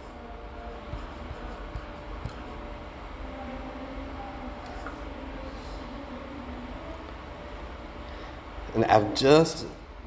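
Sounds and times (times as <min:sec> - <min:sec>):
background hiss and low hum: 0:00.0 - 0:10.0.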